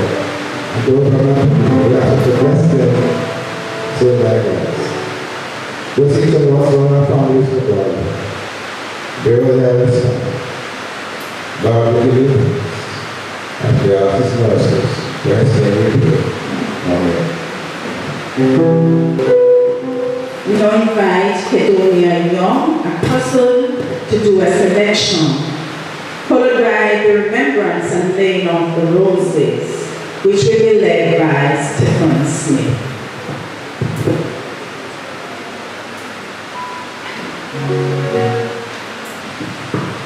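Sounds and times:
instrumental music: 0:00.0 - 0:06.9, 0:18.3 - 0:20.6, 0:36.5 - 0:39.2.

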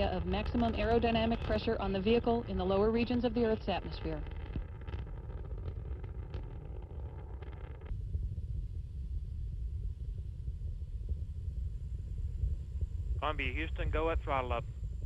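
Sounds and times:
rocket crackle: 0:00.0 - 0:15.0
rocket engines rumbling: 0:00.0 - 0:15.0.

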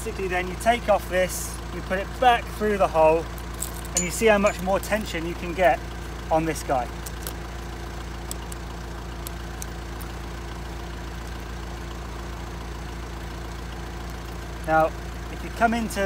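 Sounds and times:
van engine idling: 0:00.0 - 0:16.0
snow chain links clinking: 0:03.4 - 0:05.4.

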